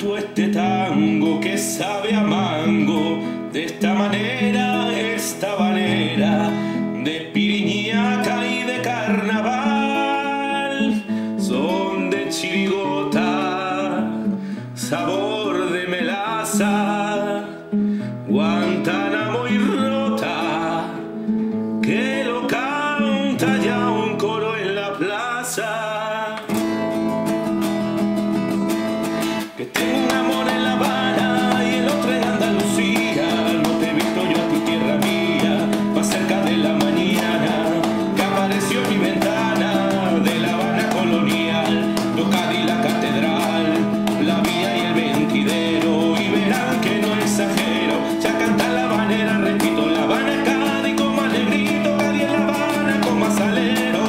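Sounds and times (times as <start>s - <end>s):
habanera on acoustic guitar: 0.0s - 54.0s.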